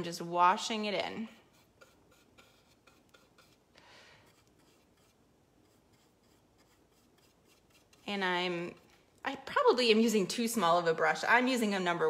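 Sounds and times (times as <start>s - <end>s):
paintbrush rubbing on canvas: 1.2s - 8.9s.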